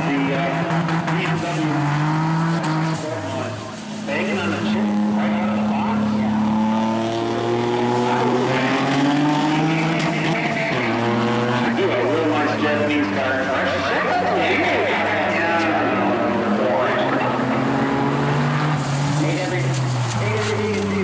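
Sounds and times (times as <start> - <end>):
racing car engines at full throttle: 0.0 - 21.0.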